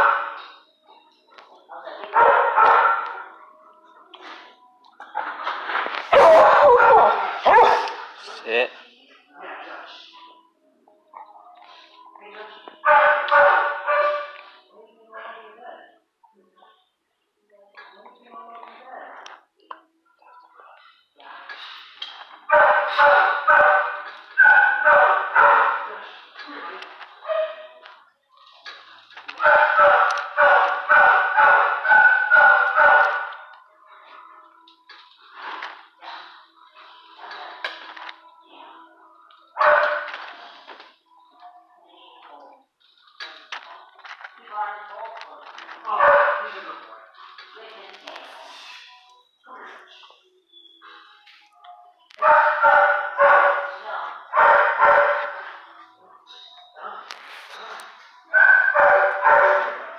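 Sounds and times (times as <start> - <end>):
dog barking and yelping: 6.1 - 8.0, 22.5 - 25.9, 29.3 - 33.4, 52.2 - 53.7, 58.3 - 59.8.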